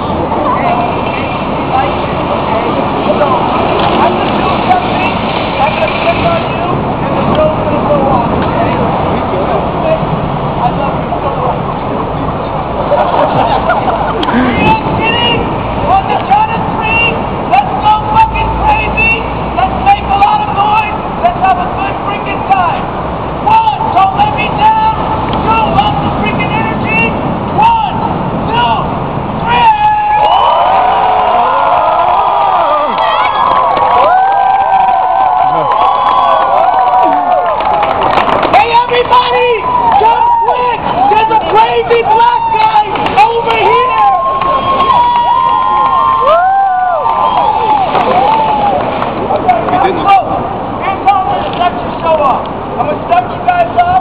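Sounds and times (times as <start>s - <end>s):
city traffic hum: 0.0s - 54.0s
crowd chattering and calling out: 0.0s - 54.0s
crowd cheering: 29.5s - 50.5s.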